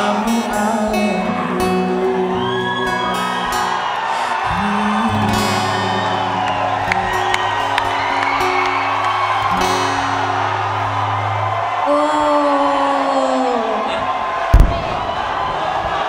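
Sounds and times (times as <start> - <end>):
man singing into a microphone: 0.0 - 3.4, 4.2 - 6.9
acoustic guitar: 0.0 - 11.9.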